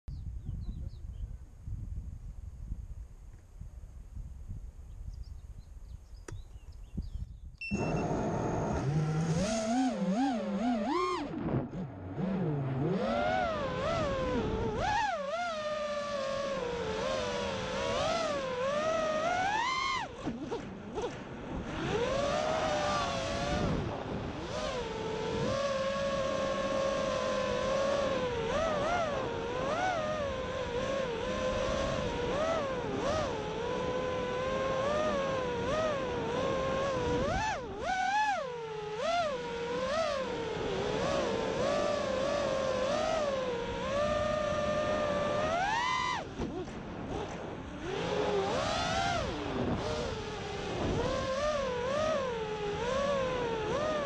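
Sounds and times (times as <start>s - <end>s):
quadcopter motors buzzing whine: 4.2s - 54.0s.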